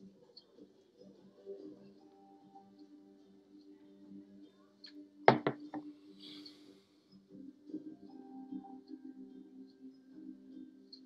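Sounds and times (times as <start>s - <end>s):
low background music: 0.0s - 11.0s
quick knocks: 5.3s - 5.8s.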